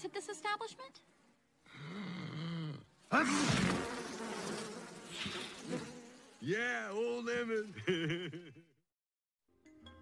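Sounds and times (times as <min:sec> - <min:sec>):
cartoon flies buzzing: 0:02.1 - 0:06.4.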